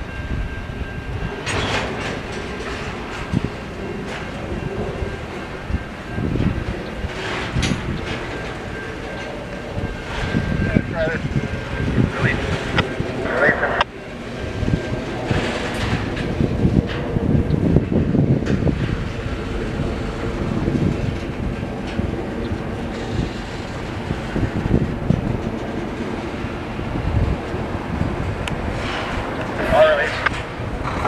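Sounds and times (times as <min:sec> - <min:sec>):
freight train rumbling past: 0:00.0 - 0:31.0
steel wheels clattering on rails: 0:00.0 - 0:31.0.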